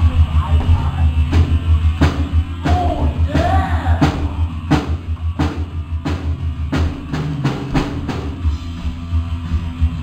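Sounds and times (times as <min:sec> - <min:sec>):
heavy rock band playing: 0:00.0 - 0:10.0.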